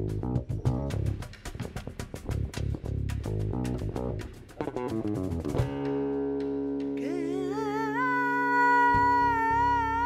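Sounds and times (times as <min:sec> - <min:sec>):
cajon strikes: 0:00.0 - 0:07.0
woman singing with vibrato: 0:07.0 - 0:10.0.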